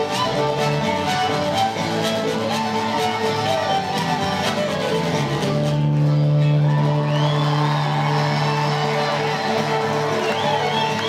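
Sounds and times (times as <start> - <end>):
string band music with fiddle: 0.0 - 11.0.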